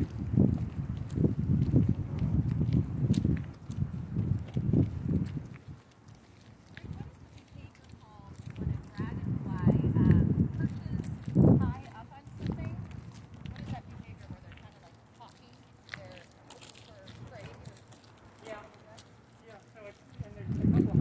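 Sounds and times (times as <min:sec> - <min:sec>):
footsteps on asphalt: 0:00.0 - 0:21.0.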